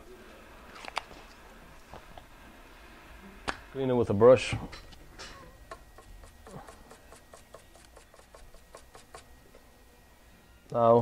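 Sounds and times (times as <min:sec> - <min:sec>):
brush scrubbing circuit board: 0:05.8 - 0:09.3.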